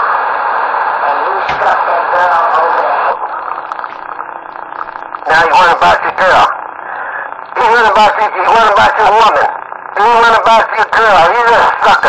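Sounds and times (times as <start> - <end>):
faint hum: 0.0 - 12.0
radio static hiss: 0.0 - 12.0.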